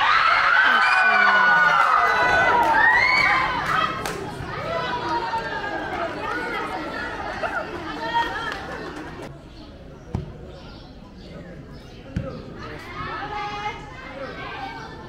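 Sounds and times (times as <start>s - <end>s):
spectators calling out: 0.0s - 9.3s.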